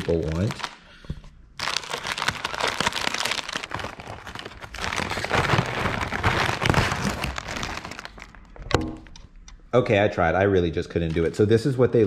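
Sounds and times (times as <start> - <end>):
foil wrapper crinkling: 0.0 - 0.8, 1.6 - 8.5.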